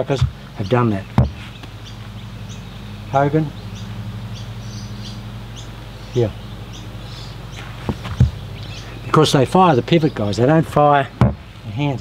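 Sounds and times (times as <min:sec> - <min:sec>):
faint bird chirps: 0:00.0 - 0:12.0
low steady hum: 0:00.0 - 0:12.0
golf club striking ball: 0:01.1 - 0:02.8.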